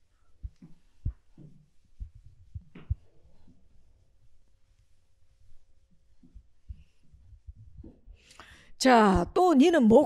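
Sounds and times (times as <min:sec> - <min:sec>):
dull low thumps: 0:00.4 - 0:03.4, 0:06.2 - 0:08.2.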